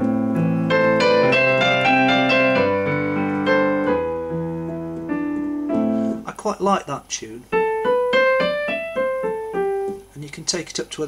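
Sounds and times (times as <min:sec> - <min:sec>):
piano melody on keyboard: 0:00.0 - 0:06.3, 0:07.5 - 0:10.1.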